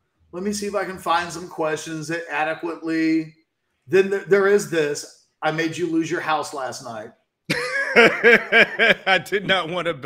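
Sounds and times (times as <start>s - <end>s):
man laughing: 7.5s - 10.0s.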